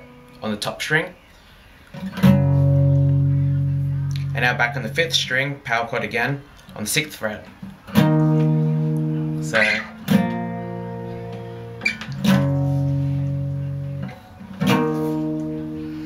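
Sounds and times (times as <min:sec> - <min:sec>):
acoustic guitar strummed chords: 0:00.0 - 0:00.8, 0:01.9 - 0:05.4, 0:07.6 - 0:16.0.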